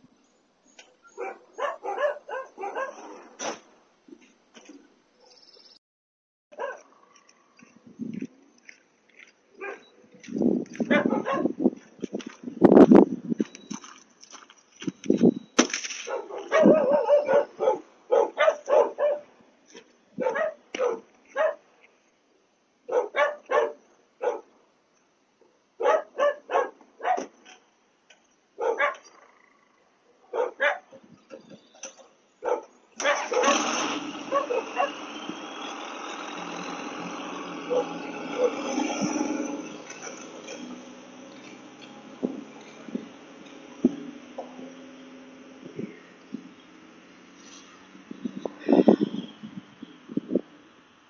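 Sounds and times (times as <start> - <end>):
dog barking: 1.1 - 3.4, 6.5 - 6.9, 9.6 - 9.9, 10.9 - 11.6, 16.1 - 19.3, 20.2 - 21.6, 22.9 - 24.5, 25.8 - 27.3, 28.6 - 29.1, 30.2 - 31.0, 32.4 - 33.7, 34.3 - 35.0, 37.7 - 38.7.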